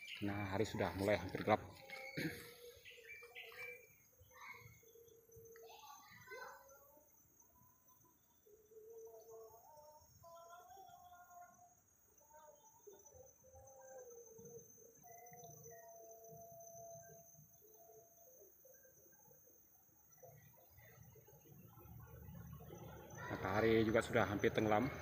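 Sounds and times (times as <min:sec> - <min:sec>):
forest birds whistling: 0:00.0 - 0:01.2, 0:01.8 - 0:06.4.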